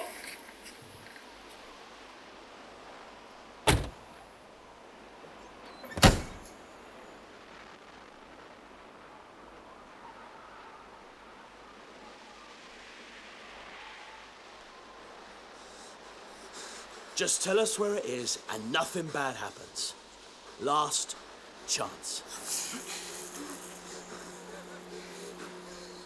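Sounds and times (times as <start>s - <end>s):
car doors and trunk slamming: 3.7s - 4.1s, 5.9s - 6.5s.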